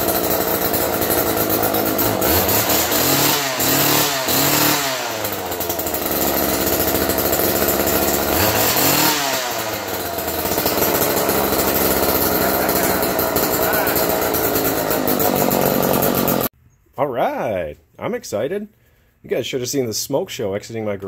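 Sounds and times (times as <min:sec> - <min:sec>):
chainsaw engine revving: 0:00.0 - 0:16.5.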